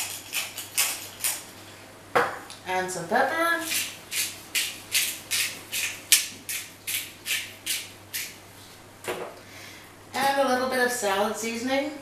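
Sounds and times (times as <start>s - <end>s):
pepper grinder strokes: 0.0s - 1.5s, 3.6s - 8.4s.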